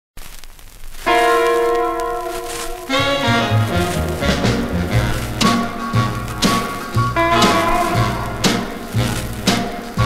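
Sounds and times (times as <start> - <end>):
vinyl surface crackle: 0.2 - 10.0
band playing held chord: 1.1 - 10.0.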